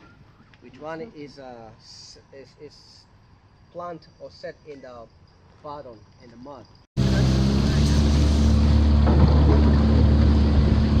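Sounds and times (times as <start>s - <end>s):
outboard motor droning: 7.0s - 11.0s.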